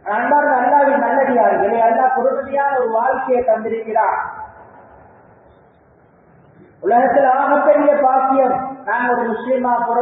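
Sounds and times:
man speaking: 0.0s - 4.6s, 6.8s - 10.0s.

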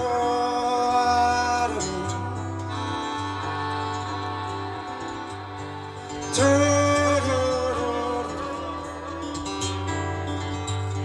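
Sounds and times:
acoustic guitar: 0.0s - 11.0s
harmonica held note: 2.4s - 10.6s.

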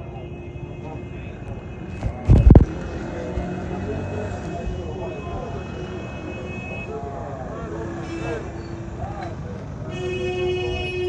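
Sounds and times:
people talking: 0.0s - 9.7s
traffic noise: 0.0s - 11.0s
vehicle horn long blast: 9.9s - 11.0s.

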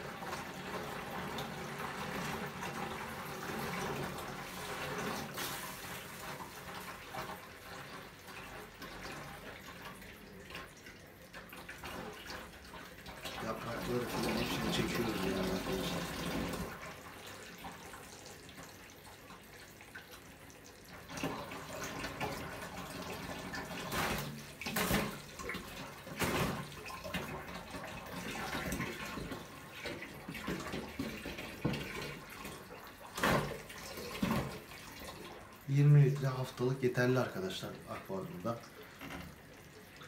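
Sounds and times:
water running and splashing: 0.0s - 40.0s.

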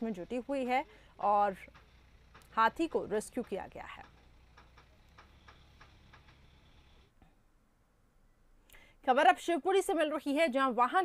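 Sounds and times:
faint ticking clicks: 0.9s - 6.6s.

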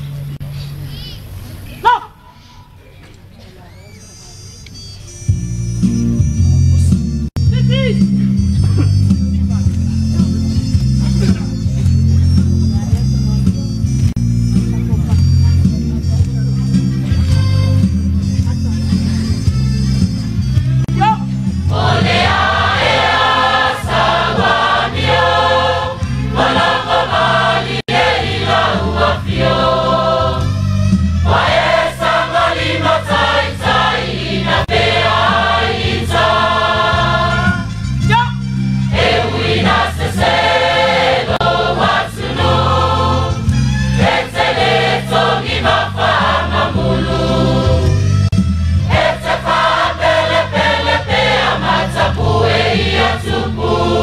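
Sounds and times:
low instrumental accompaniment: 4.1s - 54.0s
choir singing a hymn: 21.6s - 37.8s, 38.9s - 48.2s, 48.9s - 54.0s.

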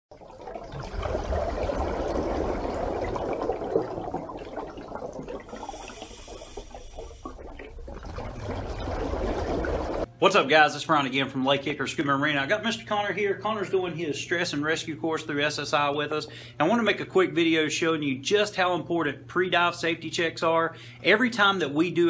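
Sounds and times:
rushing gurgling water: 0.1s - 10.1s.

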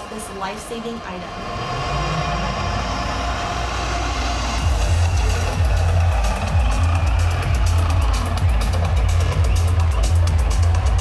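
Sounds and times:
electronic dance music: 0.0s - 11.0s
heavy bass beat: 1.6s - 11.0s.

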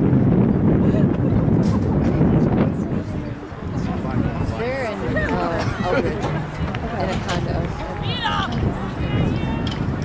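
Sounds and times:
outdoor background noise: 0.0s - 10.0s
spectators' voices: 0.3s - 10.0s.

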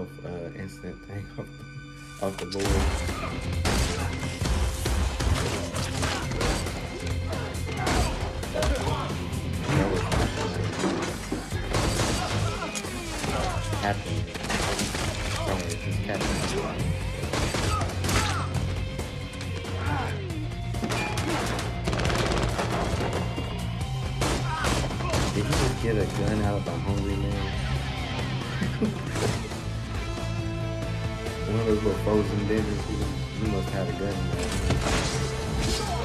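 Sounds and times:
action film score music: 0.0s - 36.0s
rapid handgun fire: 21.8s - 22.8s.

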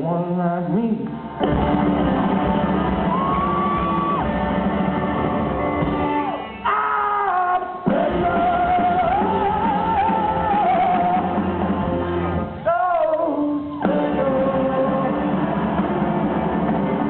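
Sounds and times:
singer's voice: 0.0s - 1.6s, 6.1s - 17.0s
bass: 0.0s - 17.0s
drums: 0.6s - 17.0s
electric guitars: 1.0s - 6.6s, 7.8s - 17.0s.

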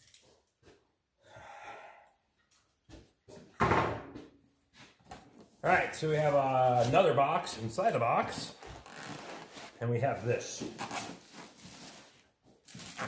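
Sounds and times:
cardboard and foam rustling: 5.1s - 13.0s.

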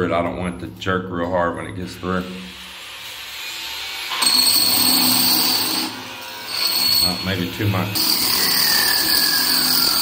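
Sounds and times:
power drill grinding through stone: 2.3s - 10.0s.

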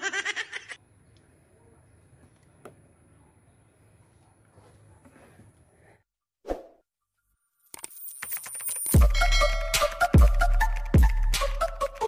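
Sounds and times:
fast run of clicks: 7.7s - 9.0s.

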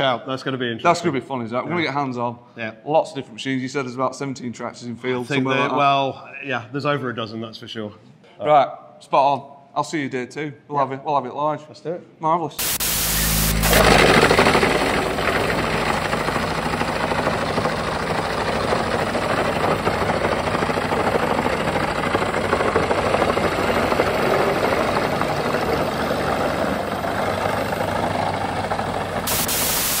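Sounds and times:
wood chipper chipping logs: 12.6s - 29.8s
diesel engine under load: 12.8s - 29.4s.

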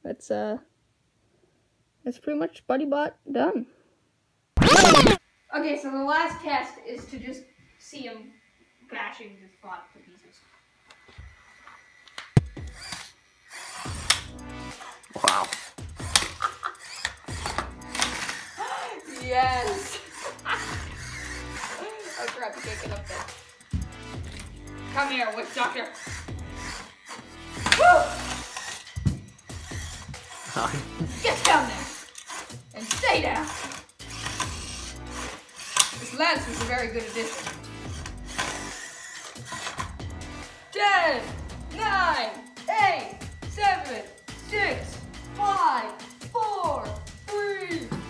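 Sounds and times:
robots knocking and thwacking: 4.6s - 5.2s
whir of small drive motors: 7.0s - 40.7s.

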